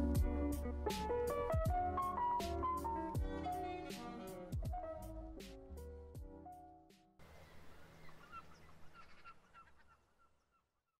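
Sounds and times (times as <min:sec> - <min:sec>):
quick bird chirps: 0:07.3 - 0:10.7.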